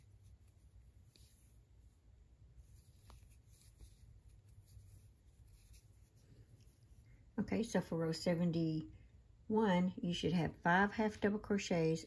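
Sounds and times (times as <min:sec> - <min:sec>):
yarn and fabric rustling: 0:00.0 - 0:08.8.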